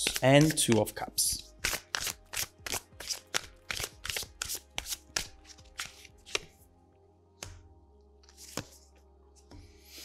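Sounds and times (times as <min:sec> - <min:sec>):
cards being shuffled: 0:00.0 - 0:06.6, 0:08.2 - 0:09.0.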